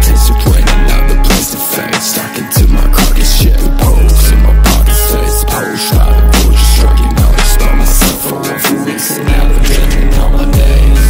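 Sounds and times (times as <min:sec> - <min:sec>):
hip-hop beat: 0:00.0 - 0:11.0.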